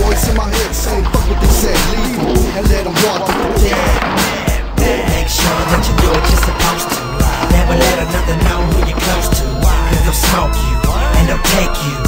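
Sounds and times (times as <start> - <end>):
skateboard wheels rolling on stone: 0.0 - 11.8
hip hop music: 0.0 - 12.0
skateboard knocking on ground: 0.1 - 10.3.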